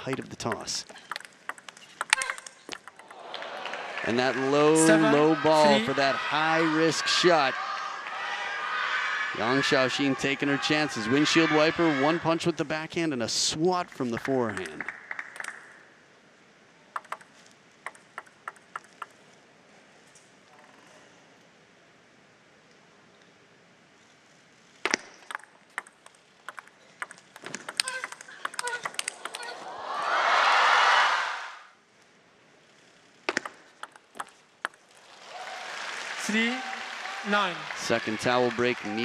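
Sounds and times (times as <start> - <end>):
table tennis ball clicking: 0.0 - 3.2, 16.9 - 19.2, 24.9 - 29.5, 33.2 - 34.9
applause: 3.1 - 6.0, 14.0 - 15.7, 35.0 - 39.0.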